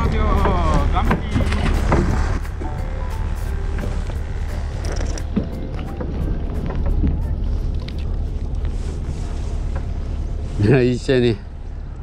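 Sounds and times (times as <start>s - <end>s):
wind buffeting microphone: 0.0s - 10.6s.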